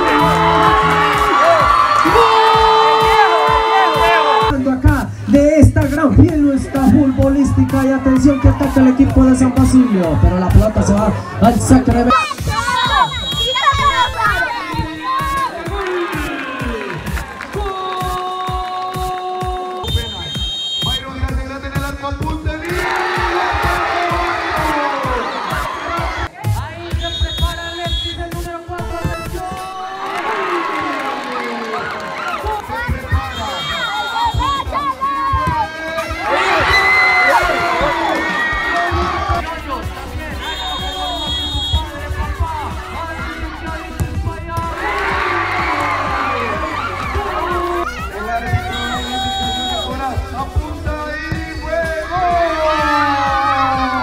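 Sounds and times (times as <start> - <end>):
crowd shouting and cheering: 0.0 - 54.0
music playing: 0.0 - 54.0.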